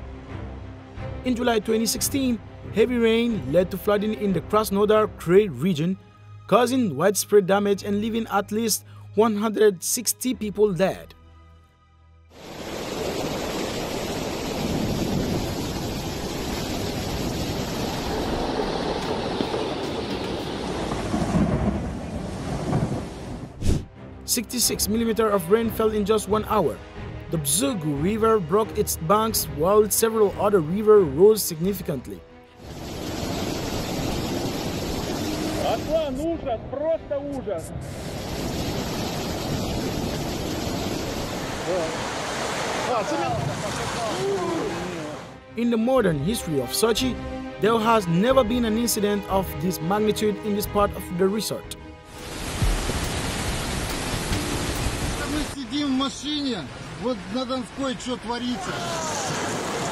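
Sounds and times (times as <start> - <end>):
floodwater rushing: 12.4 - 26.9, 31.7 - 36.2, 37.7 - 45.5, 46.2 - 59.9
person calling out: 58.6 - 59.3.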